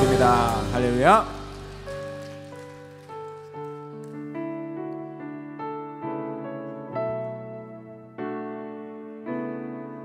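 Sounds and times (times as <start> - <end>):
soft piano chords: 0.0 - 10.0.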